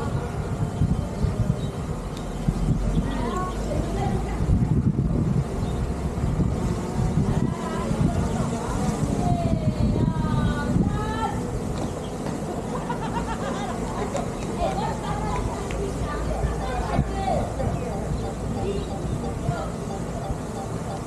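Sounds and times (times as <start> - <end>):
low rumbling microphone noise: 0.0 - 21.0
people talking: 2.8 - 5.5, 6.9 - 11.5, 12.3 - 21.0
drone propeller hum: 4.0 - 21.0.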